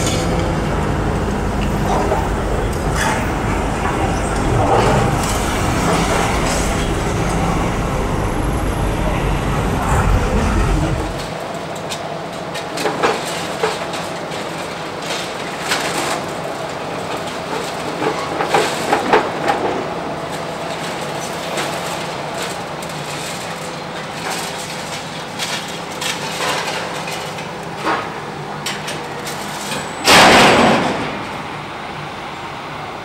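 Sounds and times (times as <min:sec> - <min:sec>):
heavy low rumble: 0:00.0 - 0:11.4
excavator engine running: 0:00.0 - 0:11.7
falling rubble: 0:00.0 - 0:11.8.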